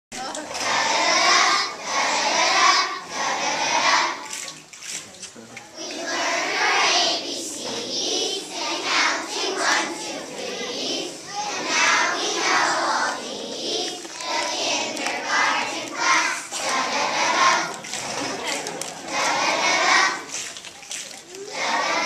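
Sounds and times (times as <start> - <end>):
young children singing together: 0.2 - 4.5, 5.8 - 20.6, 21.2 - 22.0.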